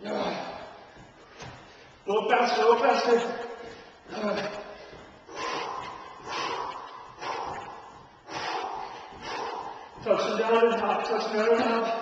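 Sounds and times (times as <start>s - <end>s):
man breathing hard: 0.0s - 2.1s, 3.5s - 10.8s.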